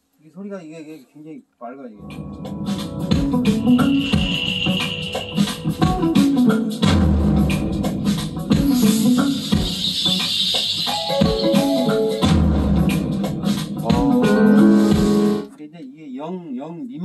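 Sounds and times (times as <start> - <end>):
music with loud drums: 2.1 - 15.5.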